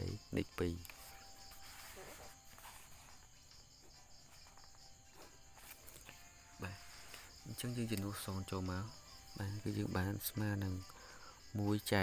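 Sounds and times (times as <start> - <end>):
high-pitched insect chirping: 0.0 - 12.0.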